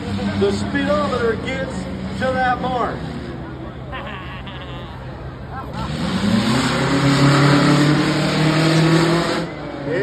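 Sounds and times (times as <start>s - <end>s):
car engine accelerating hard: 5.5s - 10.0s.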